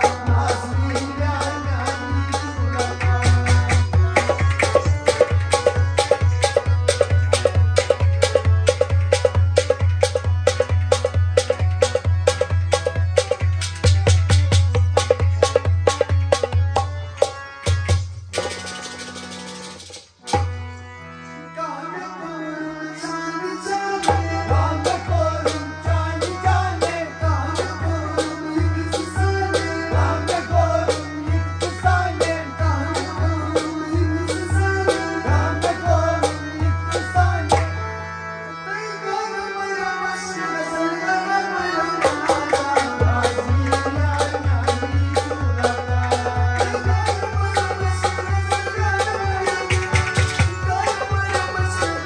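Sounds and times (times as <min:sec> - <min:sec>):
harmonium melody: 0:00.0 - 0:52.0.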